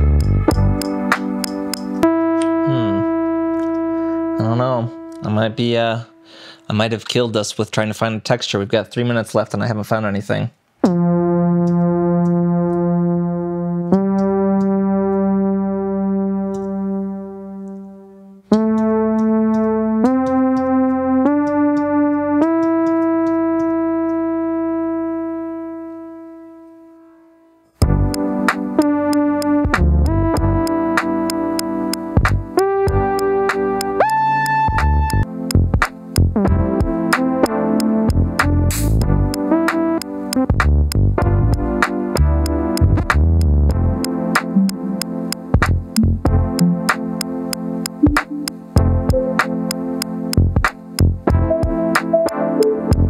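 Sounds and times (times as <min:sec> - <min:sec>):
synthesizer beat with hi-hats: 0:00.0 - 0:05.3, 0:10.8 - 0:15.3, 0:16.3 - 0:25.0, 0:27.8 - 0:53.0.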